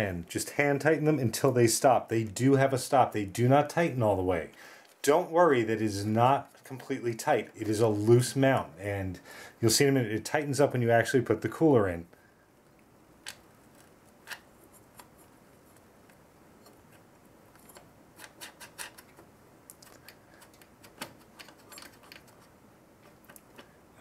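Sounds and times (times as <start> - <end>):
standoffs clicking and scratching: 12.7 - 23.8.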